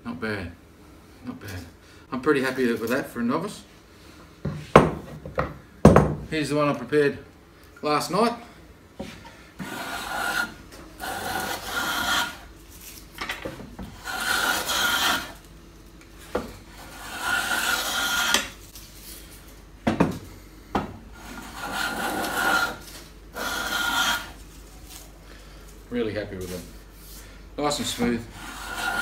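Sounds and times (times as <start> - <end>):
hand plane rasping on wood: 9.6 - 12.4, 13.9 - 15.4, 16.8 - 18.5, 21.2 - 22.8, 23.4 - 24.4, 28.3 - 29.0.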